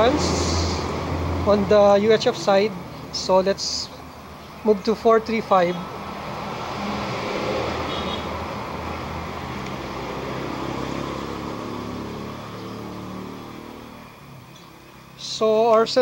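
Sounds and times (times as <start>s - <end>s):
vehicle passing by: 0.0s - 15.2s.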